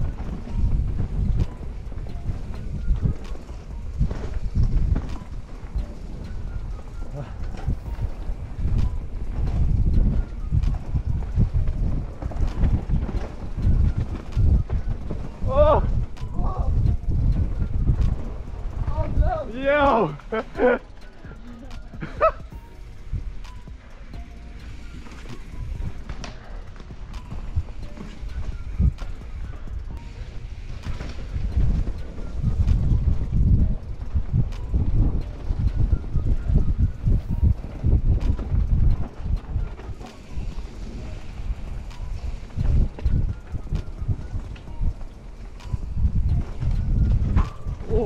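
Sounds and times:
bike tyre and suspension rumble: 0.0 - 48.0
wind buffeting microphone: 0.0 - 48.0.

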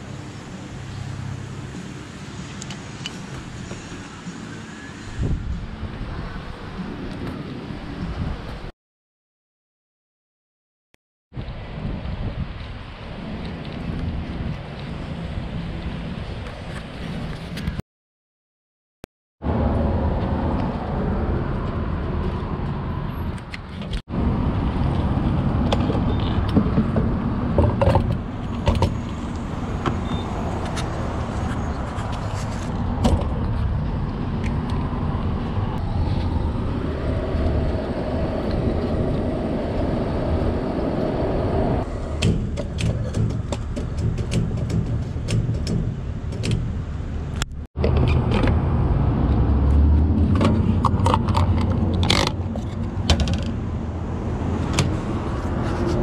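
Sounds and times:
traffic noise: 0.0 - 8.7, 11.3 - 17.8, 19.4 - 56.0.

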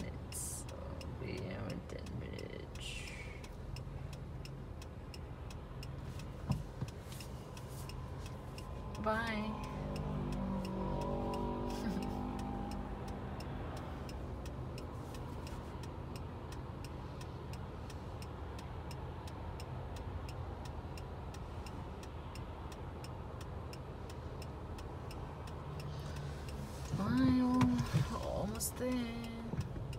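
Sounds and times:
car engine and road noise: 0.0 - 29.9
turn signal ticking: 0.0 - 29.9.

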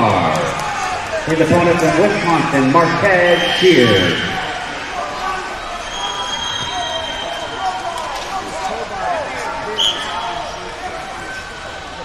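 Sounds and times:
overlapping voices: 0.0 - 5.6.

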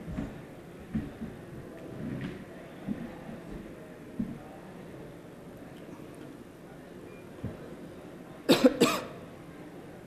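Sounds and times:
man coughing into microphone: 8.5 - 9.2.

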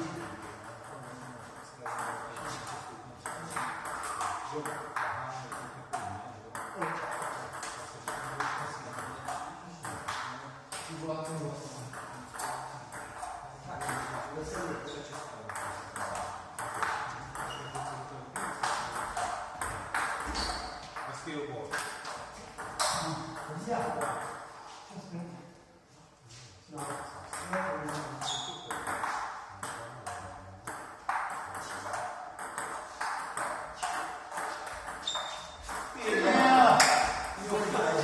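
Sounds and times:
voices talking: 35.7 - 38.0.

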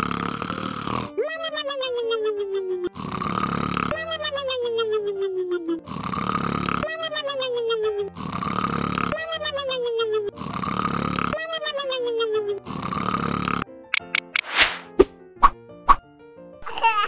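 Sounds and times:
cartoon snoring with whistle: 0.0 - 1.2, 2.9 - 4.1, 5.8 - 7.0, 8.1 - 9.4, 10.3 - 11.4, 12.6 - 13.6.

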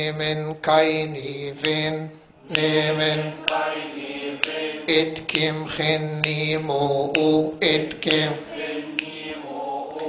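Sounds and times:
man chanting a hymn: 0.0 - 3.5, 4.8 - 9.0.

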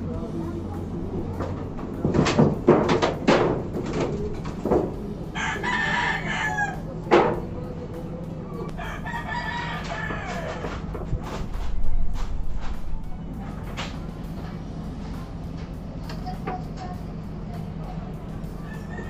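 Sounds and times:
sharp knocks: 2.0 - 5.0
rooster crowing: 5.3 - 7.0, 8.6 - 10.9, 18.6 - 19.0.

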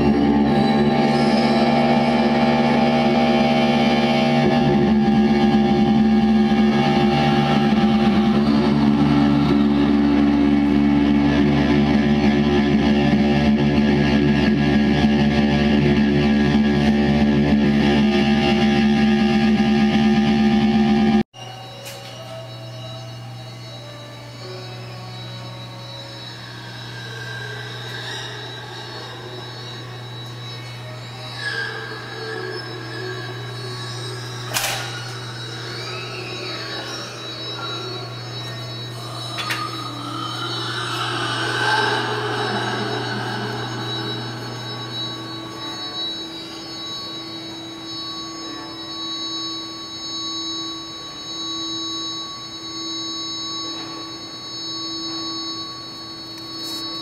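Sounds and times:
high electronic tones: 0.0 - 57.0
low drone: 0.0 - 57.0
mid-pitched pulsing tone: 0.0 - 57.0.

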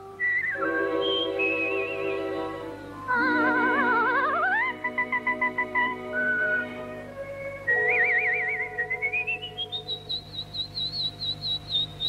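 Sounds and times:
bird-like trilling whistle: 0.0 - 2.6, 3.3 - 12.0
orchestral chords: 0.0 - 9.8.

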